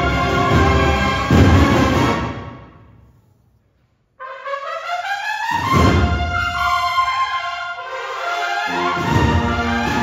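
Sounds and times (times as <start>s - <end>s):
brass band playing: 0.0s - 2.7s, 4.2s - 10.0s.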